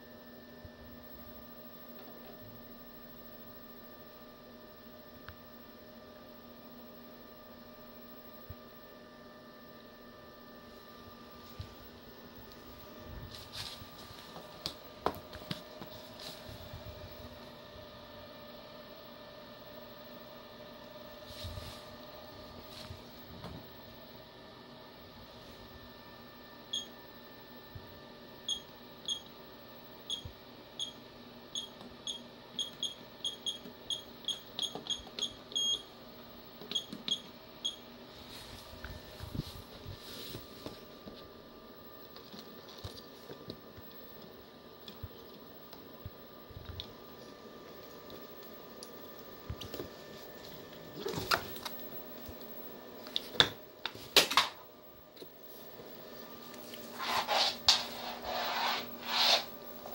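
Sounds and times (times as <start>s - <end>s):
steady electrical hum: 0.0s - 59.9s.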